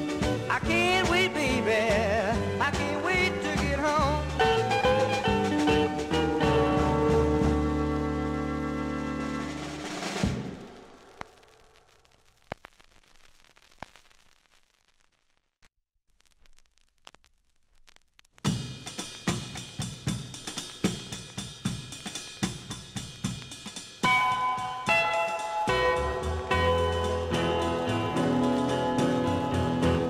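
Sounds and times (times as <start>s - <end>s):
drum kit beat: 0.0s - 7.9s, 9.1s - 11.0s, 18.4s - 30.0s.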